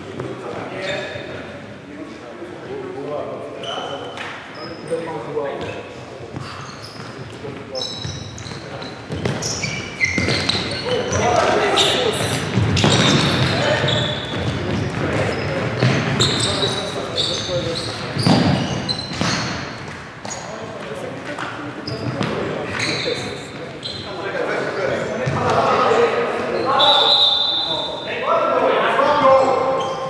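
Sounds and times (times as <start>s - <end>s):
shoes squeaking on court: 3.6s - 25.8s, 29.1s - 30.0s.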